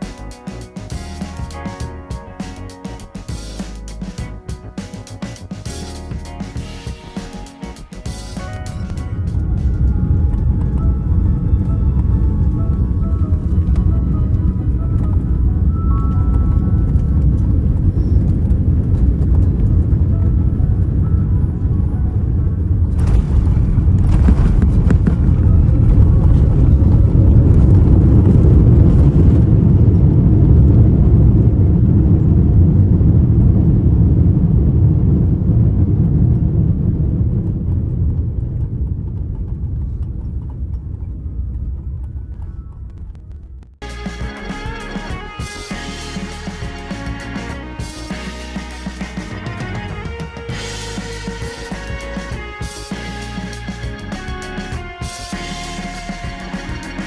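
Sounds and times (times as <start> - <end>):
wheels touching down on runway: 0.0 - 22.0, 22.8 - 57.0
quiet background music: 0.0 - 29.2, 43.8 - 57.0
jet cabin engine and airflow noise: 7.9 - 42.9.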